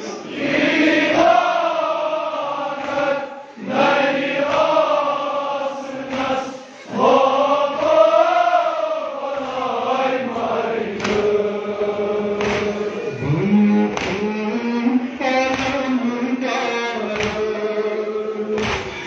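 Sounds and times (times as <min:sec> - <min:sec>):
men chanting a lament: 0:00.0 - 0:14.6.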